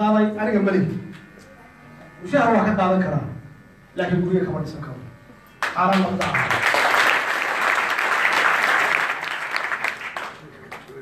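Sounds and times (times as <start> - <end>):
faint electrical buzz: 0.0 - 11.0.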